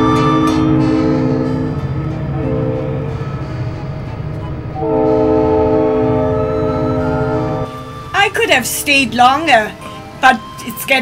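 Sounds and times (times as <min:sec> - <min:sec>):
steady low pulse: 0:00.0 - 0:09.2
sustained chords: 0:00.0 - 0:11.0.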